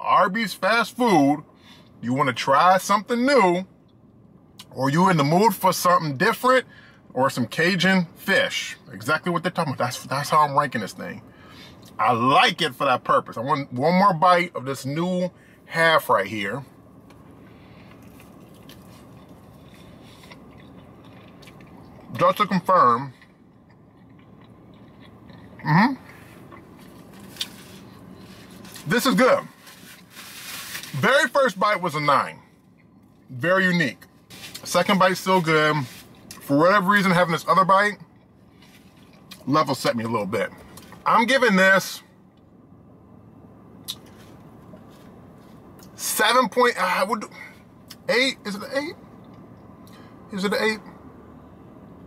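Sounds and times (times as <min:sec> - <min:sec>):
low hum inside car: 0:00.0 - 0:52.0
man chewing food: 0:17.8 - 0:22.2, 0:23.2 - 0:28.8.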